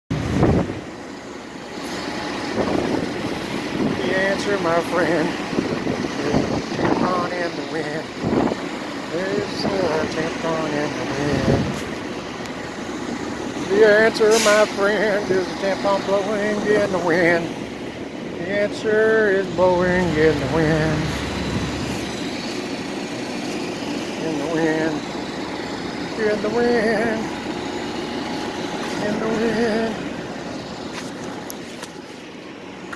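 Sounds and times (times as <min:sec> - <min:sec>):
low outdoor rumble: 0:00.1 - 0:32.9.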